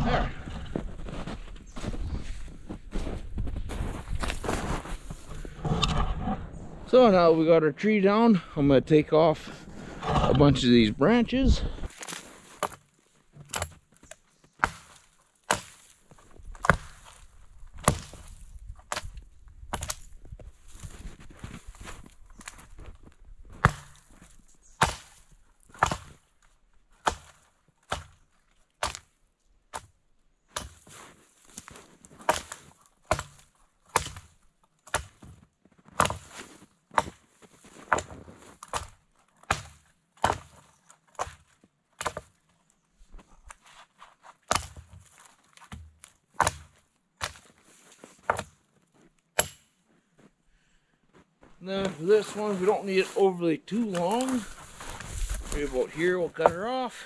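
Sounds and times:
branches rustling and cracking: 0.2 - 6.0, 11.6 - 49.5, 51.6 - 56.9
axe chopping wood: 12.0 - 12.8, 13.4 - 13.8, 14.6 - 15.9, 16.5 - 20.1, 23.5 - 24.1, 24.8 - 26.2, 27.0 - 28.2, 28.8 - 29.9, 30.5 - 30.9, 31.6 - 35.3, 36.0 - 37.2, 37.9 - 42.4, 44.5 - 47.6, 48.2 - 48.6, 49.4 - 49.8.

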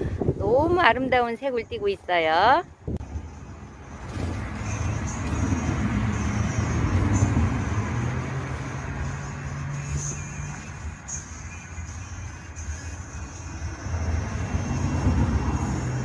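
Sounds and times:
engine hum and tyre noise: 2.7 - 16.0
vehicle passing: 2.7 - 16.0.

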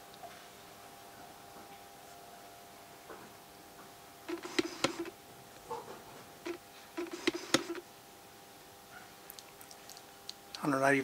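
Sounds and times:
faint electrical hum: 0.0 - 11.0
sharp clicks and light knocks: 6.5 - 7.8.

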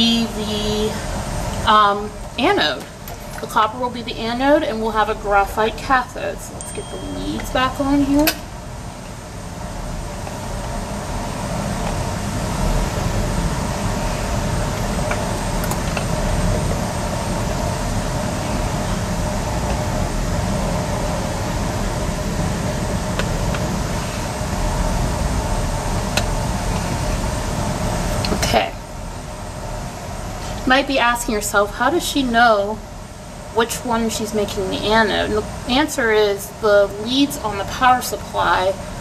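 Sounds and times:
machine rumble and whir: 0.0 - 39.0.

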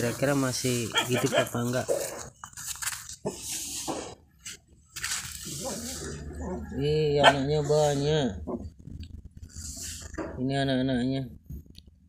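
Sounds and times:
twigs crackling: 0.0 - 3.2, 4.8 - 6.0
leaves rustling: 4.9 - 6.3.

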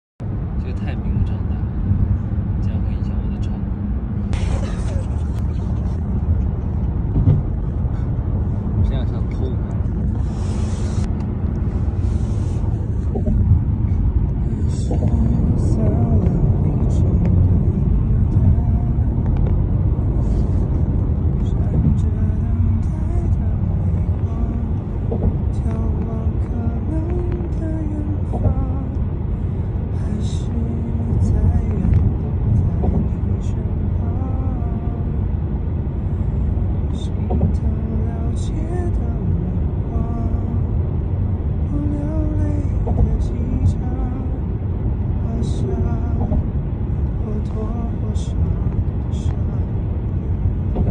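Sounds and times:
car driving rumble inside cabin: 0.2 - 50.9
man singing unaccompanied: 14.7 - 19.2, 37.0 - 40.7, 41.7 - 44.4, 45.2 - 46.4, 47.2 - 49.7.

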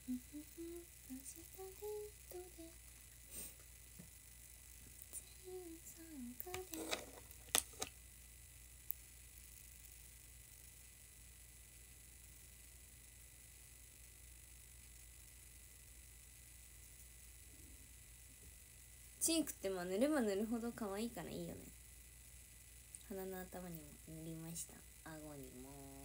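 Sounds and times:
room hiss and hum: 0.0 - 26.0.

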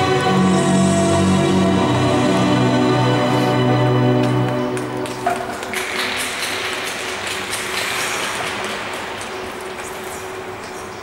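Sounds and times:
piano music: 0.0 - 5.7
crowd applause: 4.1 - 10.6.

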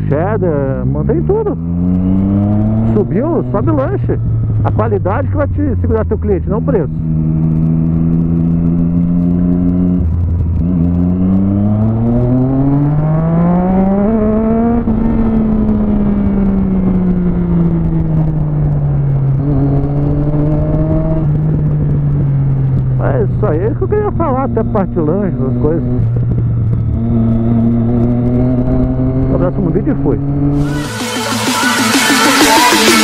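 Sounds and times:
motorcycle engine: 0.0 - 33.0.

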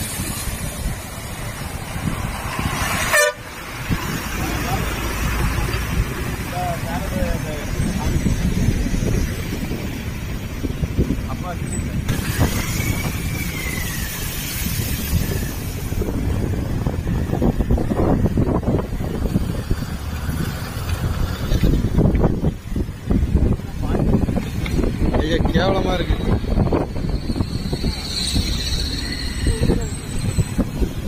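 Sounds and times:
motorcycle riding: 0.0 - 31.0
wind buffeting microphone: 0.0 - 31.0.

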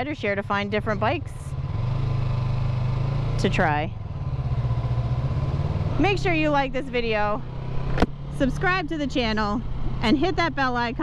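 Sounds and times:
motorcycle engine at low revs: 0.0 - 11.0
road noise: 0.0 - 11.0.

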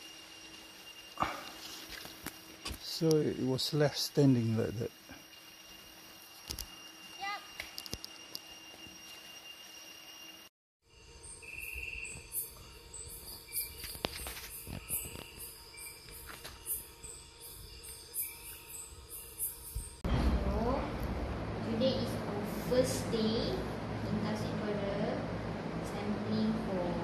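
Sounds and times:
insect buzzing call: 0.0 - 20.0
night insects chirping: 0.0 - 20.1
forest background sound: 0.0 - 26.9.

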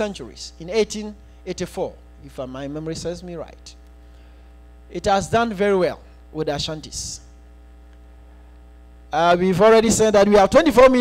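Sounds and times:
electrical mains hum: 0.0 - 11.0
faint high buzzing tones: 0.0 - 11.0.

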